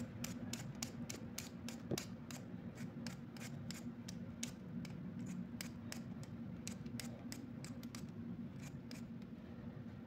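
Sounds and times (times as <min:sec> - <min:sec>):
vegetable peeler scraping potato: 0:00.0 - 0:09.1.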